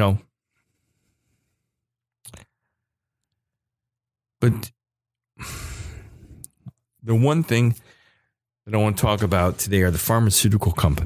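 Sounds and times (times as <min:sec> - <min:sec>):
man breathing into microphone: 0:00.5 - 0:01.8, 0:05.4 - 0:06.5
small mouth clicks: 0:02.2 - 0:02.5.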